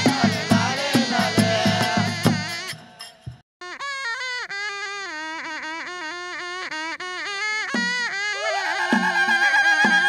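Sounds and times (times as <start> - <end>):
reed folk pipe melody: 0.0 - 10.0.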